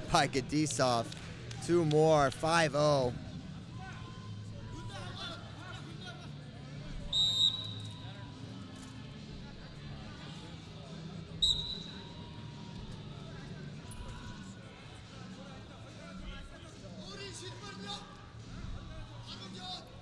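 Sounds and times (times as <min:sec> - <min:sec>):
murmur of arena crowd: 0:00.0 - 0:20.0
referee's whistle blasts: 0:07.1 - 0:08.0, 0:11.4 - 0:12.1.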